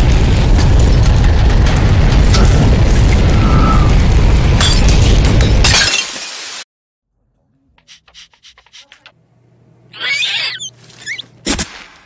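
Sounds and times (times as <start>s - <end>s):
low rumble with crackles: 0.0s - 5.6s.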